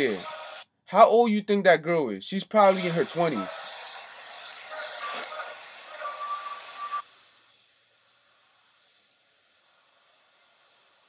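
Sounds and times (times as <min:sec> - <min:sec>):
street traffic through phone speaker: 0:00.0 - 0:07.0.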